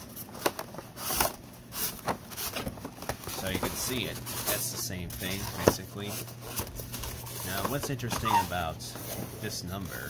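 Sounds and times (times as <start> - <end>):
cardboard scraping and rustling: 0.0 - 10.0.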